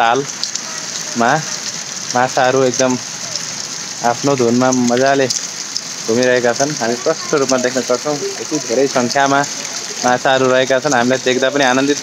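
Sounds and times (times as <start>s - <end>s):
water pouring into a pool: 0.0s - 12.0s.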